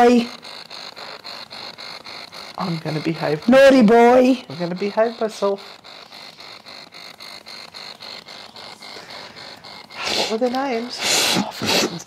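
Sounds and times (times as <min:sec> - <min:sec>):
choppy bursts of radio static: 0:00.0 - 0:12.0.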